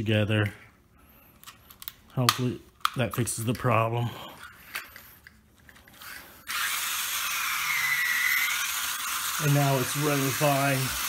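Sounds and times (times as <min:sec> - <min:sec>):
toy train electric motor buzzing: 0:05.9 - 0:11.0.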